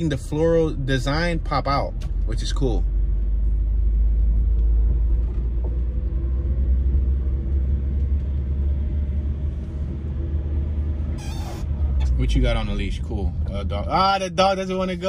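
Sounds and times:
car engine and tyre noise: 0.0s - 15.0s.

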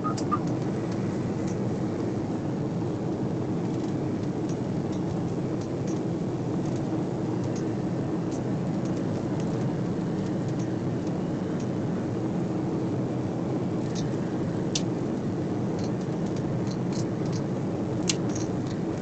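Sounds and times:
jet cabin engine drone: 0.0s - 19.0s.

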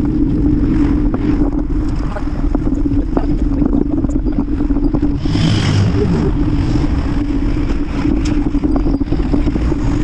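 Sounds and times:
bicycle rumble over pavement: 0.0s - 10.0s
wind on microphone: 0.0s - 10.0s.

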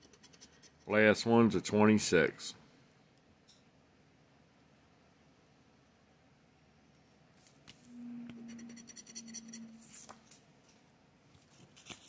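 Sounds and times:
low steady hum: 0.0s - 12.0s
paper card rustling: 11.4s - 12.0s.

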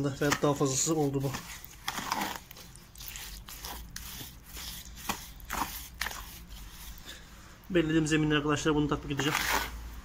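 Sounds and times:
wet mortar stirred in bucket: 0.0s - 7.2s, 9.1s - 9.8s.

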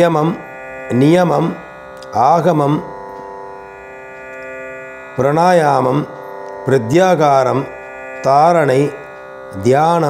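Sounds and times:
soft instrumental music: 0.0s - 10.0s.

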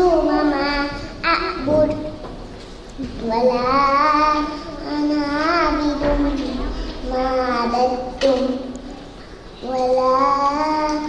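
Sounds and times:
girl chanting recitation: 0.0s - 2.2s, 3.0s - 9.0s, 9.6s - 11.0s.

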